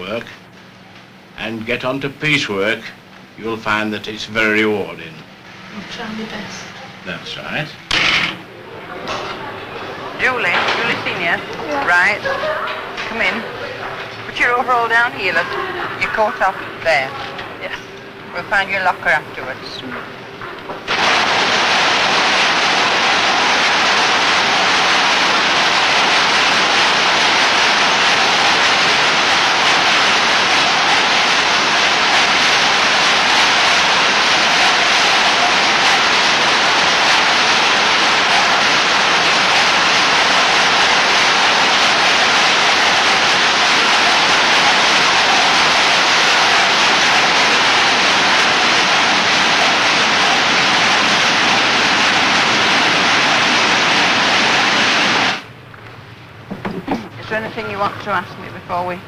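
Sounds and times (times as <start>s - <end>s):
textile machinery din: 3.4s - 55.6s.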